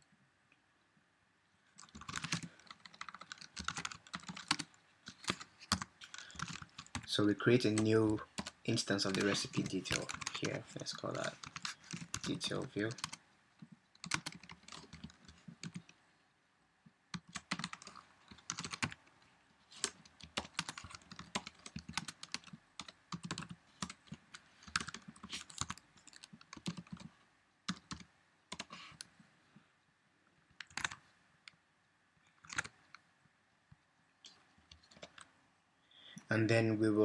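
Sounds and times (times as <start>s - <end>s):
computer keyboard typing: 1.8s - 13.2s, 14.0s - 16.0s, 17.2s - 19.0s, 19.8s - 27.1s, 27.7s - 29.1s, 30.6s - 31.0s, 32.4s - 32.8s.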